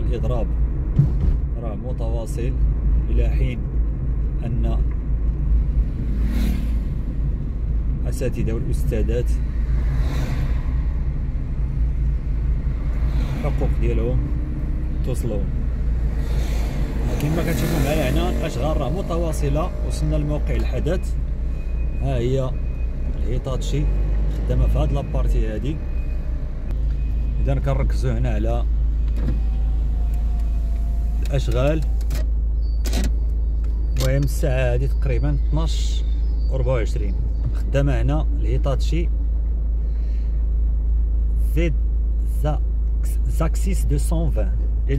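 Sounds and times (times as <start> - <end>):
car driving on paved road: 0.0 - 44.9.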